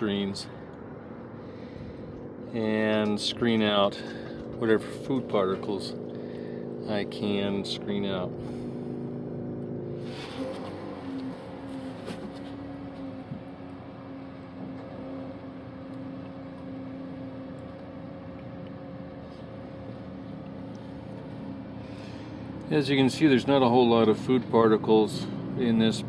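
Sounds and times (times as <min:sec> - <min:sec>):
steady mechanical hum: 0:00.0 - 0:26.0.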